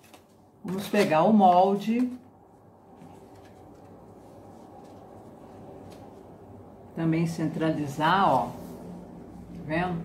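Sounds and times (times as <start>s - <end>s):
paper pattern tapping and rustling: 0.0s - 2.2s, 3.0s - 6.2s
low room hum: 0.0s - 10.0s.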